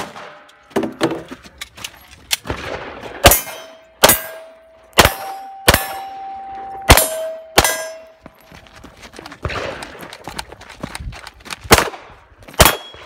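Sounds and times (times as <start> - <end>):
handgun shots: 3.2 - 8.0, 12.6 - 13.0
steel targets clanging: 3.2 - 8.2.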